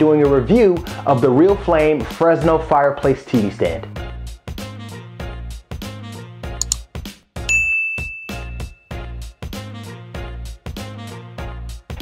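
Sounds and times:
upbeat background music: 0.0s - 12.0s
double mouse click: 6.6s - 6.8s
bright notification ding: 7.5s - 8.8s.

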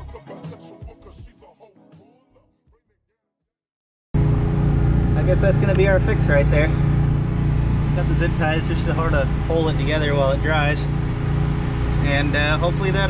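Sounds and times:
engine running steadily: 4.2s - 13.0s
people talking: 5.2s - 6.8s, 7.9s - 10.9s, 12.0s - 13.0s.

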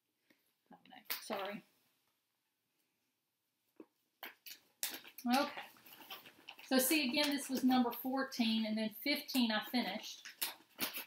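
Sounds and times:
woman speaking: 1.1s - 1.6s, 5.2s - 5.7s, 6.7s - 10.2s
packaging rustling: 4.5s - 8.0s.

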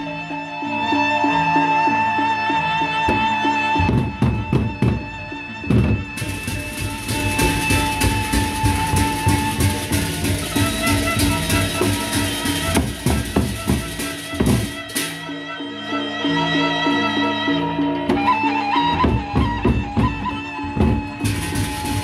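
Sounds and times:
barrel drums beaten fast: 3.1s - 5.1s, 5.7s - 15.3s, 19.0s - 22.0s
clashing hand cymbals: 6.2s - 15.3s.

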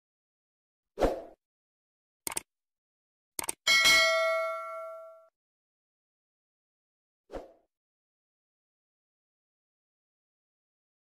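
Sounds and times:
notification bell ding: 3.7s - 5.3s.

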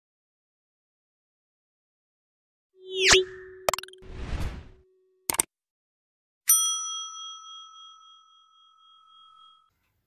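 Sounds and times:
bell ding: 6.5s - 9.7s.

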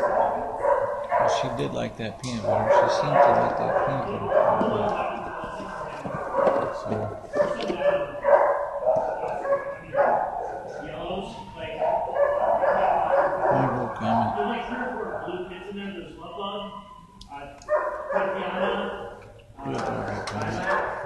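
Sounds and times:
dogs barking and whining: 0.0s - 1.6s, 2.4s - 15.4s, 16.6s - 19.2s, 20.4s - 21.0s.

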